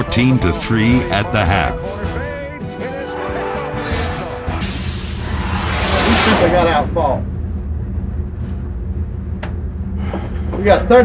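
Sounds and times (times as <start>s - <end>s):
low room hum: 5.6s - 11.0s.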